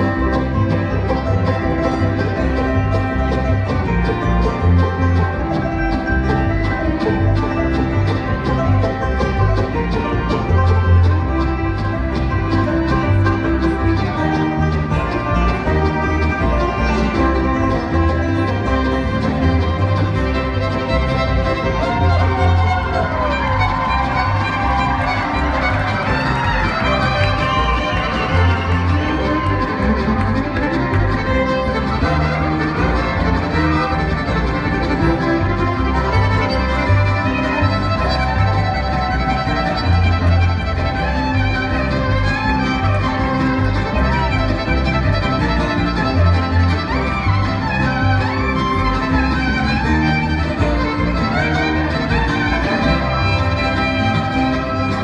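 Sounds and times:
acoustic guitars: 0:00.0 - 0:55.0
banjo: 0:00.0 - 0:55.0
fiddle melody: 0:00.0 - 0:55.0
mandolin: 0:00.0 - 0:55.0
upright bass: 0:00.0 - 0:55.0.

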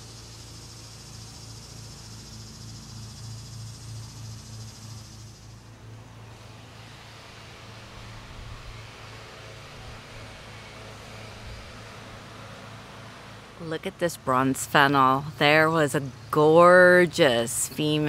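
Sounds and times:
distant lawn mowers droning: 0:00.0 - 0:18.0.

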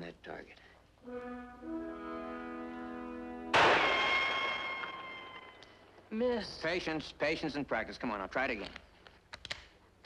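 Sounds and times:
held brass chord music: 0:01.0 - 0:03.9
rifle shot: 0:03.5 - 0:05.6.

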